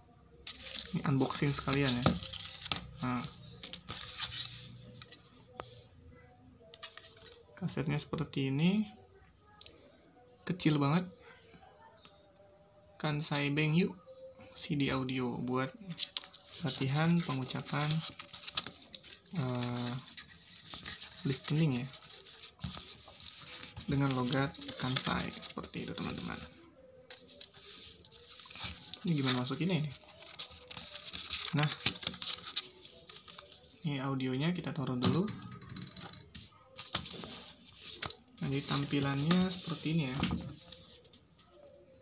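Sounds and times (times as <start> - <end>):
hand rustling book pages: 0.4 - 5.8, 6.7 - 7.6, 15.5 - 41.8.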